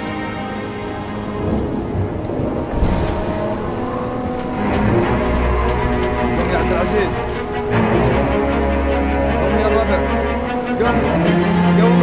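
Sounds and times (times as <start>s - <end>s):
thunder crack and rumble: 0.0s - 9.4s
rain falling: 0.0s - 12.0s.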